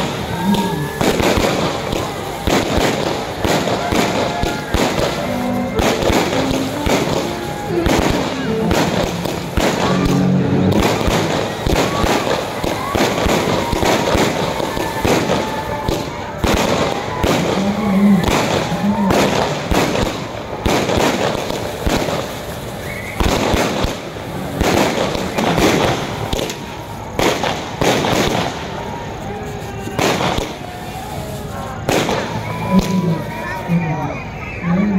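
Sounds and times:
fireworks bangs: 0.0s - 34.9s
fireworks crackling: 0.0s - 34.9s.

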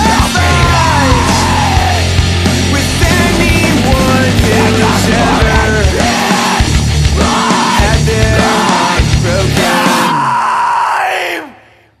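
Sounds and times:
sustained yelled voice: 0.0s - 2.2s, 4.5s - 11.8s.

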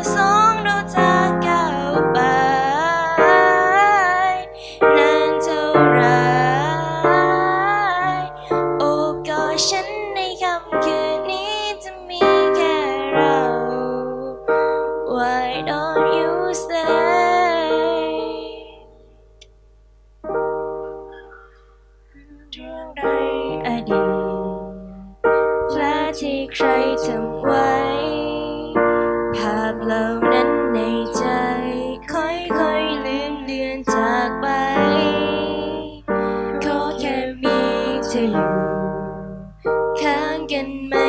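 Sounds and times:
woman singing a ballad: 0.0s - 18.9s, 22.2s - 41.0s
digital piano: 0.0s - 41.0s.

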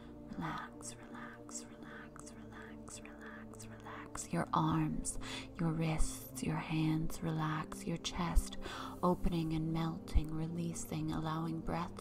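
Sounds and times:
woman whispering: 0.3s - 12.0s.

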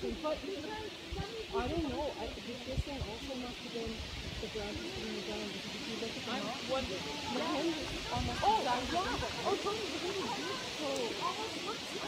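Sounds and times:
background hiss: 0.0s - 12.0s
distant voices talking: 0.0s - 12.0s.

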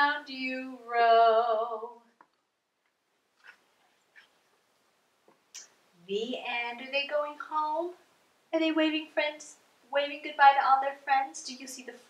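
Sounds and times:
paper rustling: 3.4s - 4.5s.

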